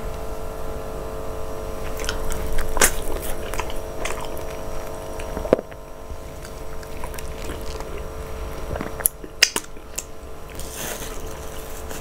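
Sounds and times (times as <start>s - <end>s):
steady hum: 0.0s - 12.0s
chewing: 1.8s - 12.0s
wet mouth clicks: 1.8s - 12.0s.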